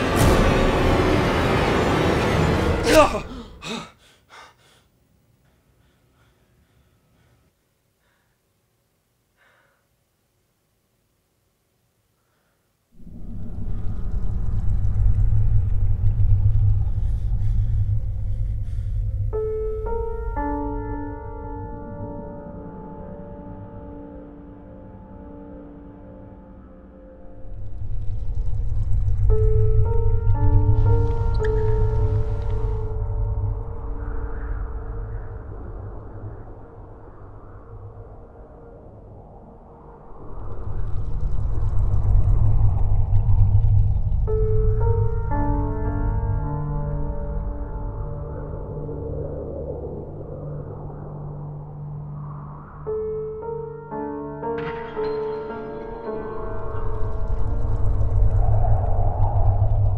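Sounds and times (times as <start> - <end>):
deep cinematic rumble: 13.0 - 22.0, 27.0 - 53.6, 56.1 - 59.9
deep steady low drone: 13.0 - 54.0, 56.0 - 59.9.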